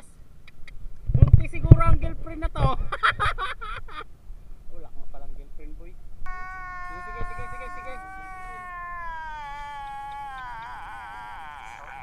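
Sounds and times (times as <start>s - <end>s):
high-pitched cat-like crying wail: 6.3s - 12.0s.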